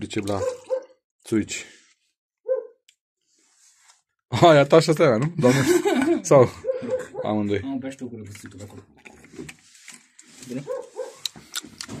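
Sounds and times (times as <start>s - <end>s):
dog yelping: 0.4s - 1.0s, 2.5s - 2.8s, 6.6s - 7.4s, 10.7s - 11.2s.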